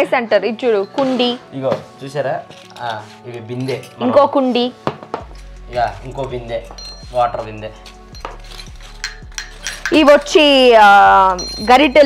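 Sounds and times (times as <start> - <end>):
small brass pots clinking: 6.0 - 12.0.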